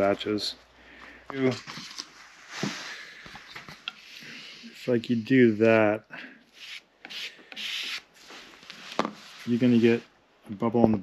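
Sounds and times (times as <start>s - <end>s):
putty knife scraping filler: 3.5s - 5.0s, 6.6s - 8.1s.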